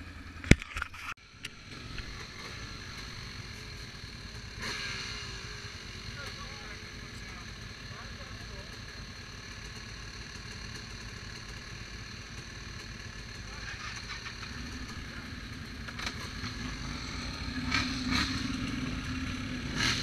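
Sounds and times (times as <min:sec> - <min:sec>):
quad bike engine: 0:00.0 - 0:20.0.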